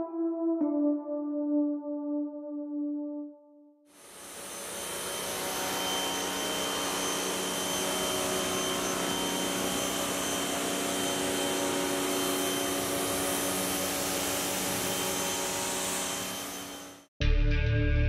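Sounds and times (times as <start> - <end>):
motor hum: 4.0 - 17.0
pressure washer jet hissing: 4.0 - 17.0.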